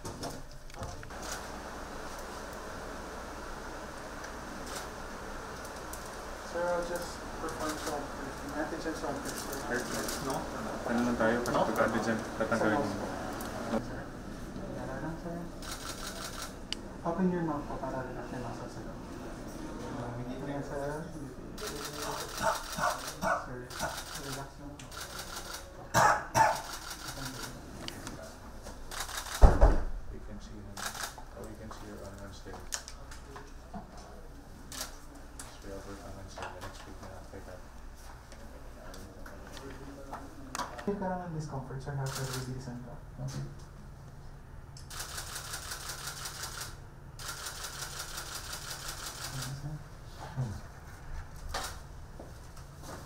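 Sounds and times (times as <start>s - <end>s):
camera shutters clicking: 28.9s - 29.4s.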